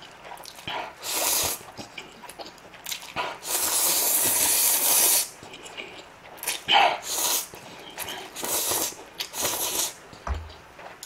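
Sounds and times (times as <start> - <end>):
slurping noodles: 0.3 - 10.0.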